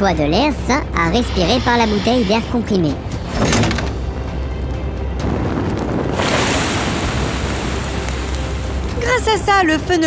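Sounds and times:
fire rushing and hissing: 1.0s - 3.3s, 5.2s - 9.3s.

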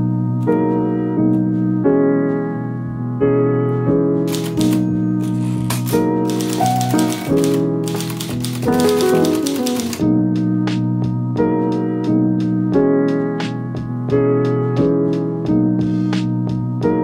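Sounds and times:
soft piano music: 0.0s - 17.0s
typewriter key strikes: 4.3s - 10.1s.

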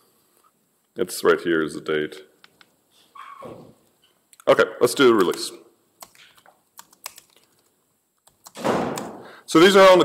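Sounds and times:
keyboard keystrokes: 6.0s - 7.6s, 8.2s - 9.2s.

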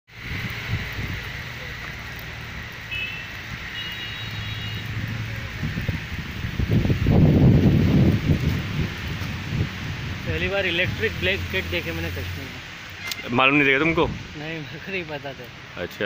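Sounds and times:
wind blowing across microphone: 0.1s - 1.9s, 3.4s - 14.5s.

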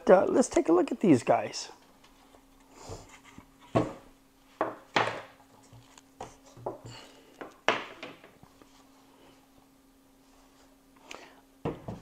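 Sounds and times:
soft rubbing: 8.4s - 11.0s.

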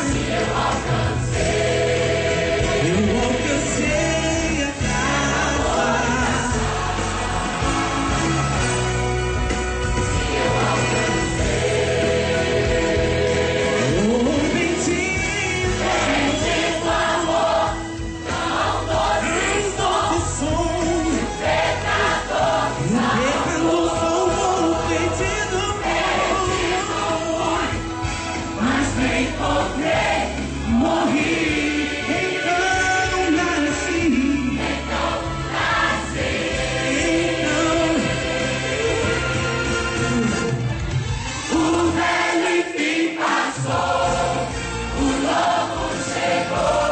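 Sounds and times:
church choir singing: 0.0s - 40.6s, 41.5s - 46.9s
instrumental accompaniment: 0.0s - 46.9s.

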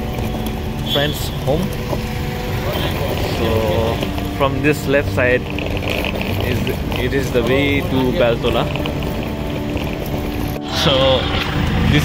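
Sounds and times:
motorbikes passing close: 0.0s - 12.0s
traffic rumble: 0.0s - 12.0s.

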